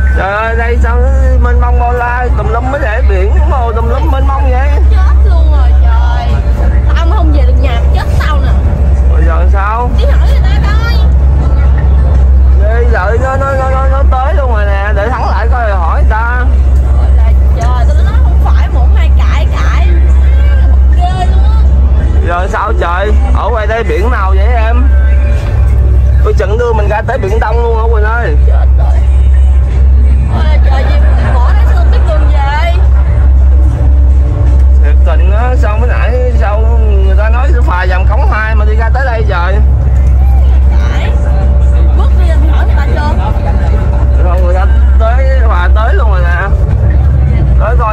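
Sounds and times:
low ferry engine drone: 0.0s - 47.9s.

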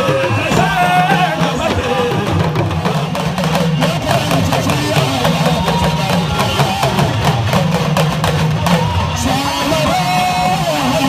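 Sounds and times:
talking drum over loudspeaker: 0.0s - 11.0s.

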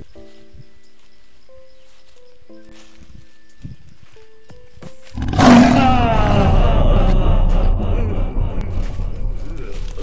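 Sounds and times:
lion roaring: 5.2s - 10.0s.

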